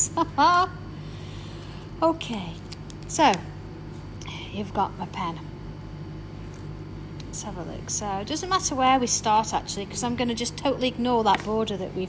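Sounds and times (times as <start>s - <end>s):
woman laughing: 0.0s - 0.8s
low steady hum: 0.0s - 12.0s.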